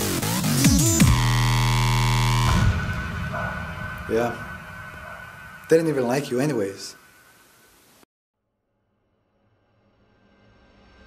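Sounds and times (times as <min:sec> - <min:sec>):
synthesizer chord: 0:00.0 - 0:06.7
steady high tone: 0:01.1 - 0:07.5
low rumble: 0:01.2 - 0:07.7.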